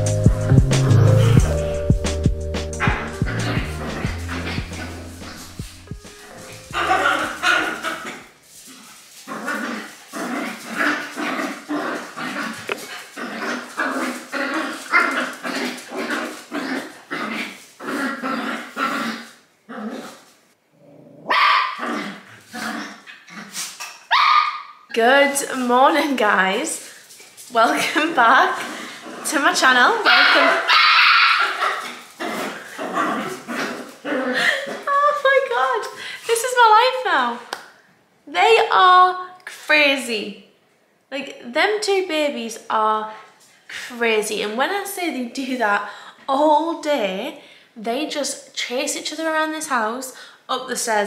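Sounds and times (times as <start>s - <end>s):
dogs play-fighting: 2.7s - 20.4s, 21.4s - 24.4s, 30.0s - 34.9s.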